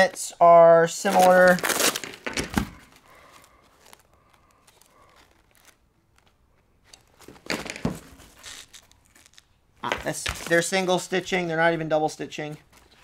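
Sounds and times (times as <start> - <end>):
nylon fabric rustling: 1.0 - 11.3.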